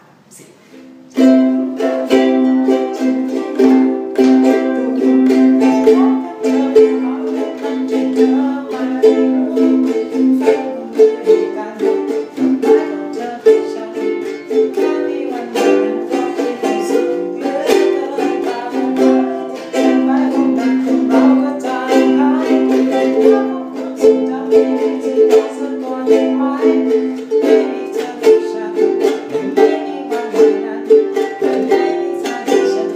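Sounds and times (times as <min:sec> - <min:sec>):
ukulele strumming chords: 0:00.6 - 0:32.9.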